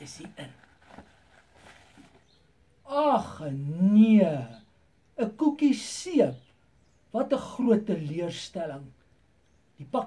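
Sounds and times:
paper bag rustling: 0.0s - 2.4s.

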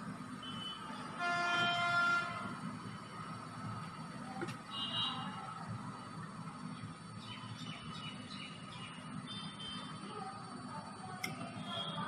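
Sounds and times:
horn sounding: 0.4s - 2.6s.

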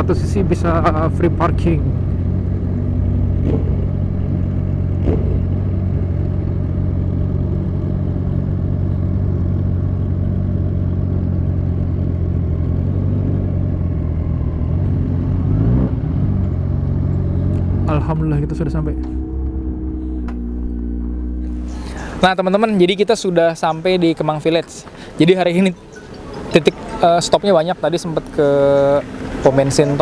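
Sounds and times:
motorcycle engine at low revs: 0.0s - 22.2s.

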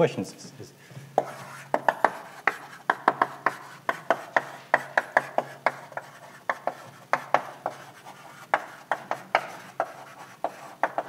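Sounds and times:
chalk tapping and scraping on blackboard: 1.2s - 11.0s.

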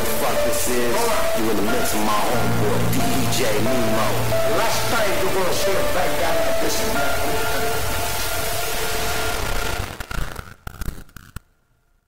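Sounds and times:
loud hiss with low rumble: 0.0s - 11.1s
sharp crackles and pops: 8.2s - 12.0s.

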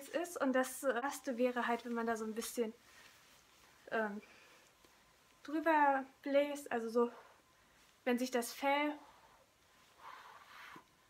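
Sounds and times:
soft breath puff hiss: 9.0s - 11.0s.

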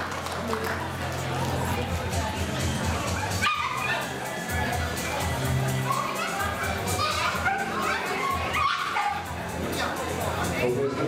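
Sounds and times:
crowd chatter: 0.0s - 11.0s
background music with bass beat: 1.7s - 7.8s
dog yipping: 3.4s - 4.1s, 5.9s - 9.3s.

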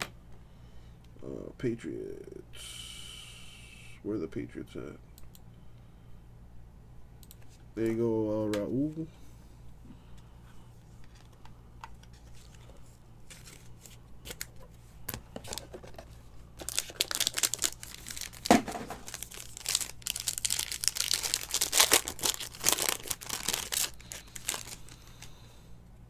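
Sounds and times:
plastic wrapping crinkling: 15.3s - 25.4s.

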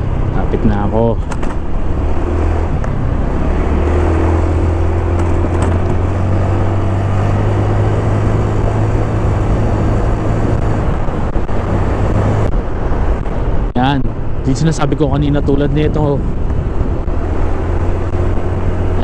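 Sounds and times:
wind and road noise: 0.0s - 19.0s.

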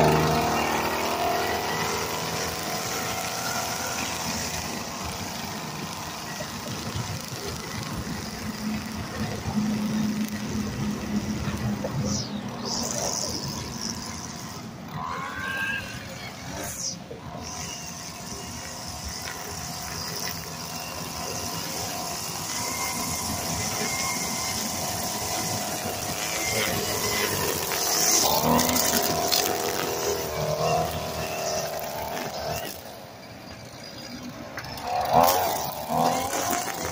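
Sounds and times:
string trimmer engine revving: 0.0s - 36.9s.

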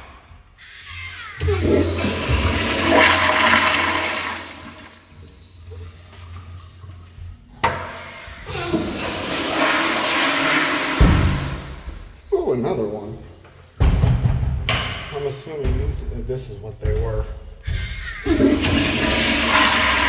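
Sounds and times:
toilet flushing: 1.4s - 12.2s, 18.2s - 20.0s.

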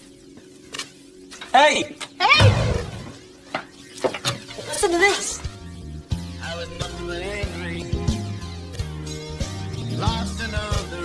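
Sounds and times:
voice singing over music: 6.4s - 8.2s, 9.9s - 11.0s.

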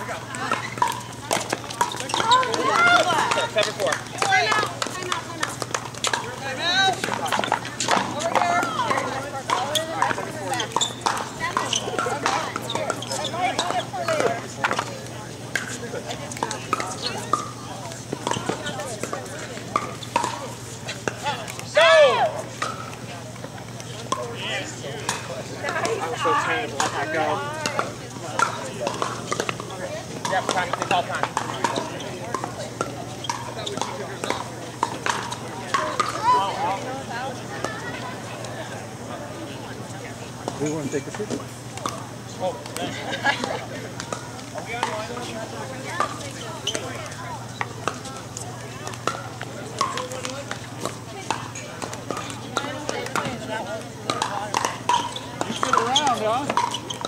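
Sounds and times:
indistinct chatter: 0.0s - 57.0s
paddles striking plastic balls: 0.2s - 14.9s, 15.5s - 21.9s, 25.1s - 36.9s, 42.6s - 57.0s.

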